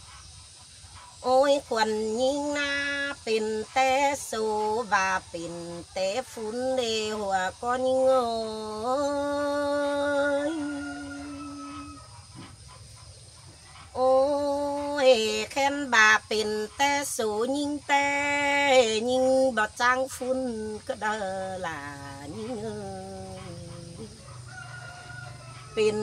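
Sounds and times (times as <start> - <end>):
low background hum: 0.0 - 26.0
woman singing: 1.2 - 12.0, 14.0 - 24.4, 25.8 - 26.0
faint animal call: 8.3 - 17.5, 21.2 - 26.0
rooster crowing faintly: 9.8 - 12.8, 21.9 - 26.0.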